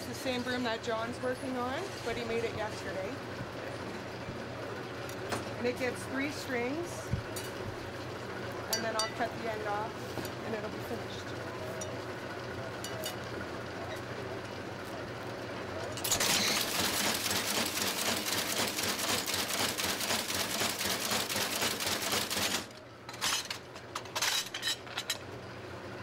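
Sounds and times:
sewing machine mechanical clatter: 0:16.0 - 0:22.7.

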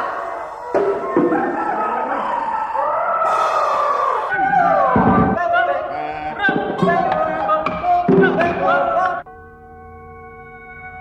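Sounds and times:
sliding electronic tones: 0:04.3 - 0:07.8.

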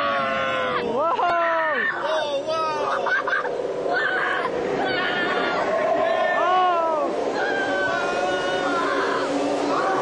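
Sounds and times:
people shrieking with laughter: 0:00.0 - 0:10.0
rushing water: 0:00.1 - 0:10.0.

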